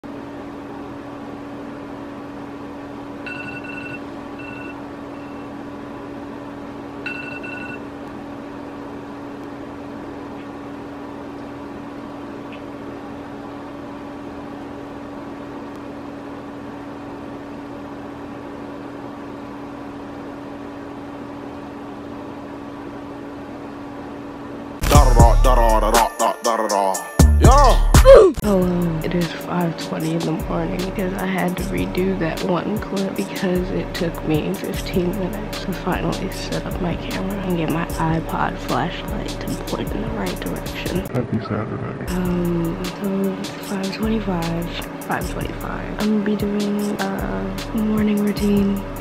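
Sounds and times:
low room hum: 0:00.0 - 0:26.1, 0:27.4 - 0:49.0
phone alarm beeps: 0:03.2 - 0:05.5, 0:07.0 - 0:07.9.

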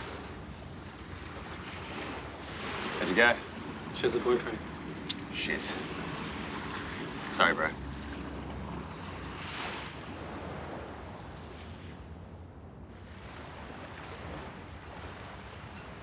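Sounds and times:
small waves washing onto sand: 0:00.0 - 0:12.0, 0:13.0 - 0:16.0
wind: 0:00.0 - 0:16.0.

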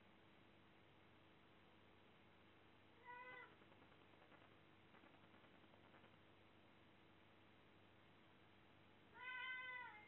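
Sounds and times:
cat meowing: 0:03.0 - 0:03.6, 0:09.1 - 0:10.0.

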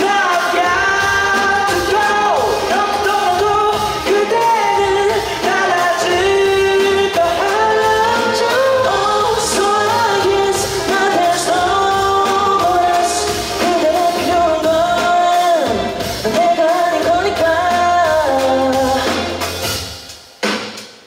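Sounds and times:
man singing: 0:00.0 - 0:19.5
pop-rock band playing: 0:00.0 - 0:21.0.

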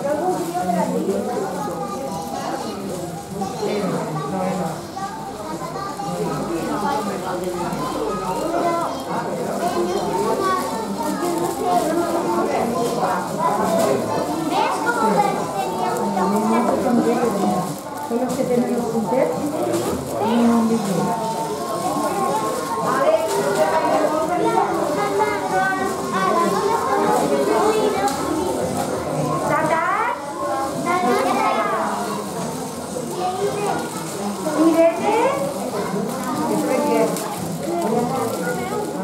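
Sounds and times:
chatter of people talking: 0:00.0 - 0:39.0
children's voices: 0:00.0 - 0:39.0.

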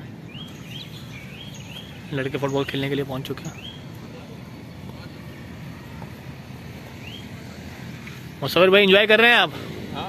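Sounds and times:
birds chirping: 0:00.0 - 0:10.0
outdoor background noise: 0:00.0 - 0:10.0.

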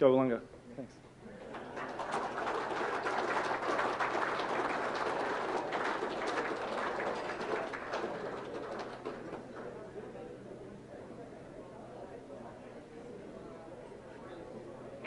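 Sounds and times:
audience applauding: 0:01.3 - 0:09.7.

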